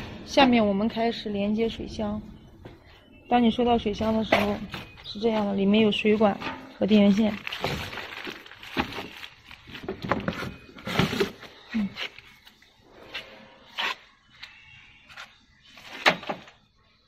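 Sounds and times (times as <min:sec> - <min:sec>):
plastic wrapping crinkling: 0:07.1 - 0:12.6.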